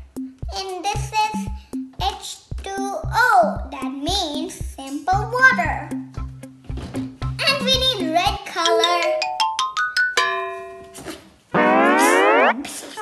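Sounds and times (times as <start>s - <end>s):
children's music with steady beat: 0.0s - 12.6s
loud rising boing glide: 11.5s - 12.6s
quick rising run of notes: 11.5s - 12.7s.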